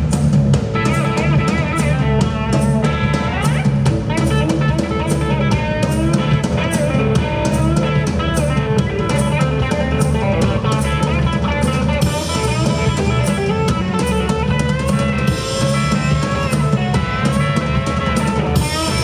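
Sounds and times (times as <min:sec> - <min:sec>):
drum kit beat: 0:00.0 - 0:19.0
electric guitar: 0:00.0 - 0:19.0.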